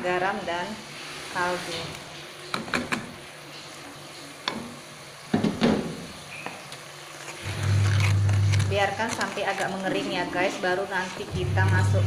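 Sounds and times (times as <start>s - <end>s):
spatula scraping a pan: 7.2s - 12.0s.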